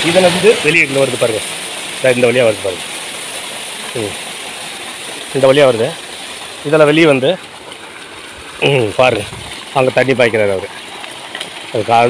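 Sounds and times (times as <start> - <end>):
water jetting from pipe: 0.0 - 12.0.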